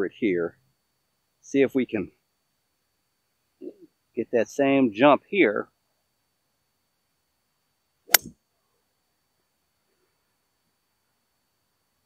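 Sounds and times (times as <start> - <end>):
golf club striking ball: 8.1 - 8.3.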